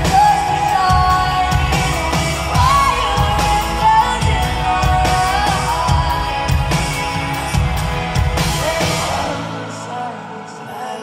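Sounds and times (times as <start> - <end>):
band with bass and drums: 0.0 - 11.0
woman singing lead vocal: 0.0 - 11.0.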